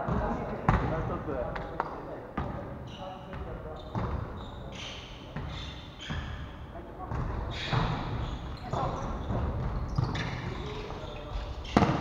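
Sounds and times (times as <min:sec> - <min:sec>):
shoe squeaks: 0:02.8 - 0:12.0.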